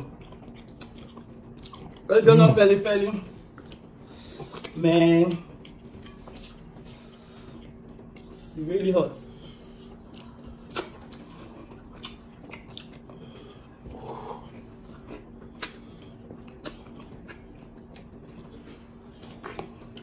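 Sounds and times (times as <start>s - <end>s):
mouth clicks and wet smacks: 0.1s - 2.1s, 10.1s - 13.2s, 15.0s - 18.5s.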